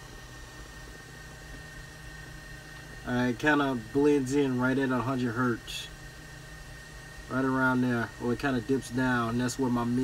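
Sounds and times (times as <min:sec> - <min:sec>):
thin high whine: 0:00.0 - 0:10.0.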